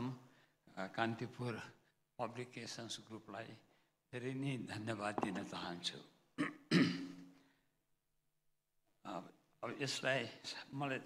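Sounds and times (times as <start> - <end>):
man clearing his throat: 6.4 - 7.2.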